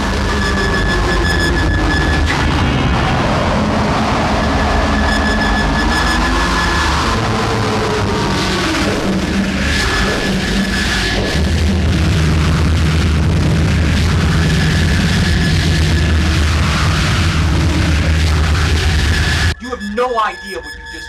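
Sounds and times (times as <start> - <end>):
dense rumbling drone: 0.0 - 21.0
high whine: 0.0 - 21.0.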